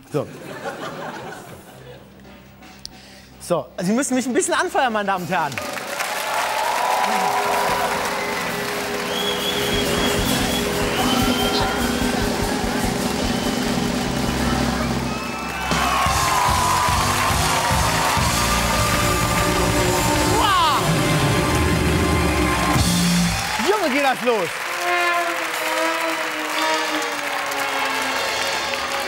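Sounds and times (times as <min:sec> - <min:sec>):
music: 0:00.6 - 0:29.0
audience clapping and cheering: 0:05.4 - 0:29.0
steady low beat: 0:09.5 - 0:15.1.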